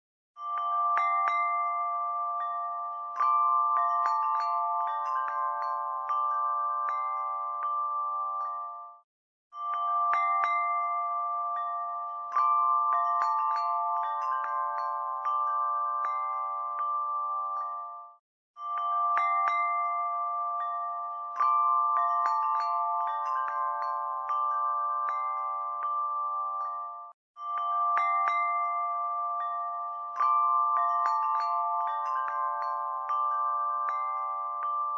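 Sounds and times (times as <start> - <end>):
bell-like chimes music: 0.4 - 34.9.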